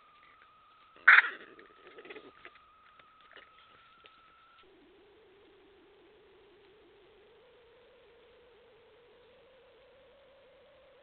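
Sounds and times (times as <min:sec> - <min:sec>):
low badger call: 0:00.0 - 0:08.6
faint high electronic whine: 0:00.0 - 0:11.0
badger yelping: 0:01.0 - 0:02.2.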